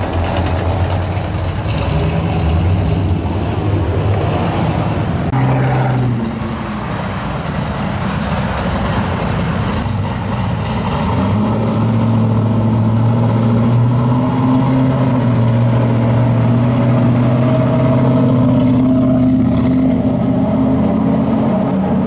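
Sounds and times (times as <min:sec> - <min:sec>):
car engines running at low speed: 0:00.0 - 0:22.0.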